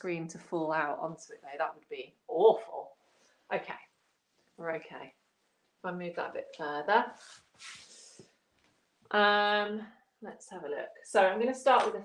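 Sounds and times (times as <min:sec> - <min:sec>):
hands rubbing shirt fabric: 0:07.1 - 0:08.8.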